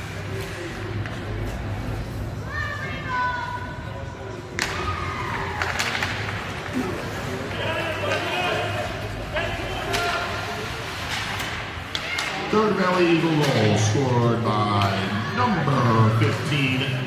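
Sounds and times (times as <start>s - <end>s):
spectators calling and shouting: 1.8s - 17.0s
hockey sticks and puck knocking: 11.0s - 13.6s.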